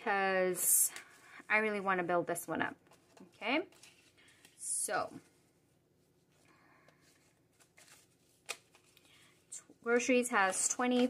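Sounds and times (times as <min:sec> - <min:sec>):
banknotes rustling: 0:06.2 - 0:11.0.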